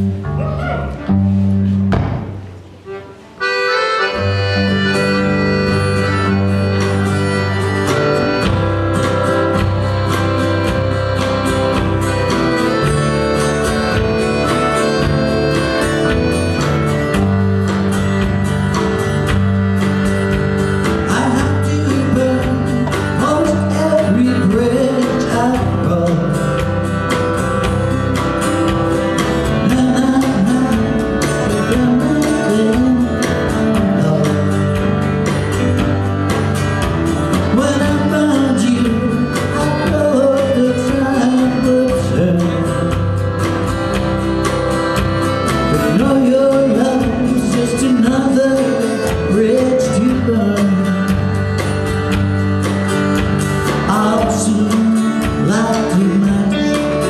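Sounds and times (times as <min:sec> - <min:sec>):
acoustic guitars: 0:00.0 - 0:57.0
drums: 0:00.0 - 0:57.0
electric guitar: 0:00.0 - 0:57.0
accordion: 0:02.8 - 0:57.0.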